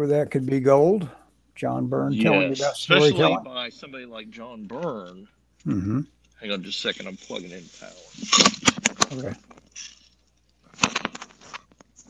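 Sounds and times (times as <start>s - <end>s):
crackling rustles: 6.8s - 12.0s.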